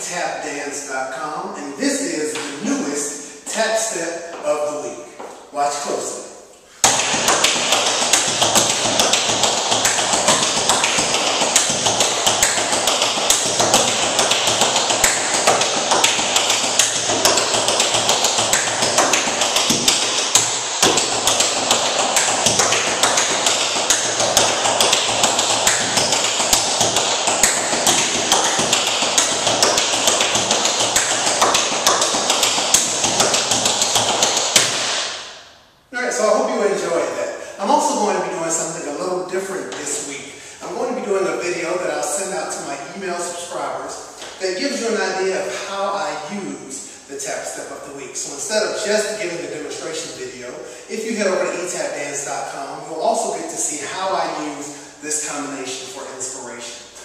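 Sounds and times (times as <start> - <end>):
tap shoes on wooden board: 6.8 - 35.0.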